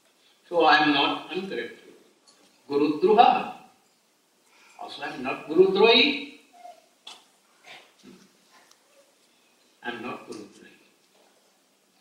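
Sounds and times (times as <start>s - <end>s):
man lecturing: 0.5s - 1.9s, 2.7s - 3.7s, 4.8s - 6.4s, 9.8s - 10.8s.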